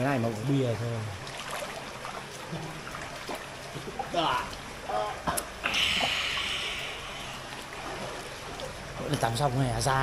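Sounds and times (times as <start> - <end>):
spring water trickling into pool: 0.0 - 10.0.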